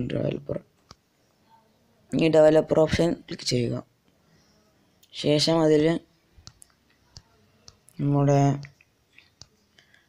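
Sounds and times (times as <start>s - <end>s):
man speaking: 0.0s - 0.7s, 2.1s - 3.9s.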